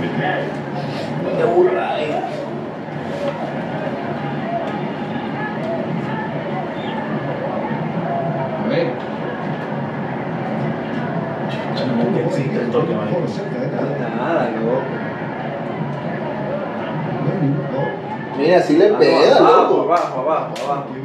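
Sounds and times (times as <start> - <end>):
indistinct voices: 0.0 - 21.0
stadium crowd murmur: 0.0 - 21.0.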